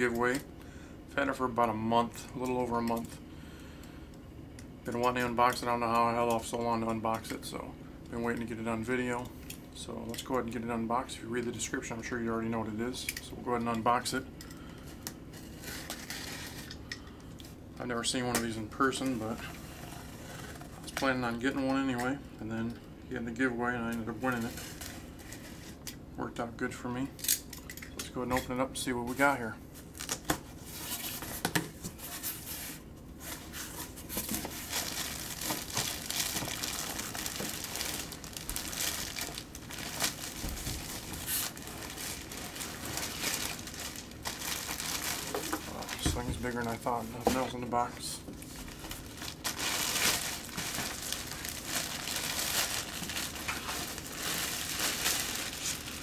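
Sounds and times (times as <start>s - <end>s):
plastic wrapping crinkling: 29.8s - 31.4s, 32.0s - 56.0s.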